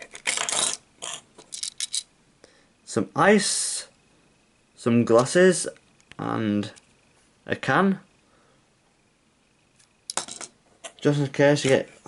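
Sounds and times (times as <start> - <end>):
plastic pieces clicking: 0.0 - 2.1.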